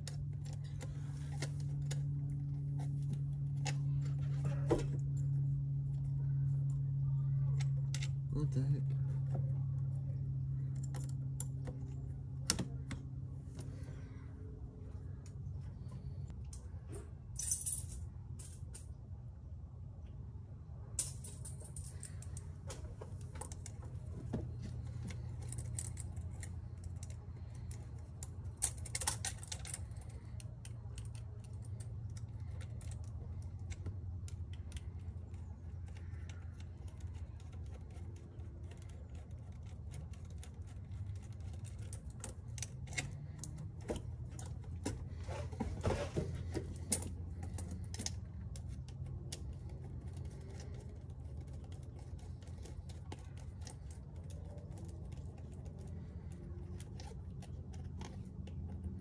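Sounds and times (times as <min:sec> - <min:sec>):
steady low hum: 0:00.0 - 0:59.0
plastic parts clicking and rattling: 0:21.0 - 0:59.0.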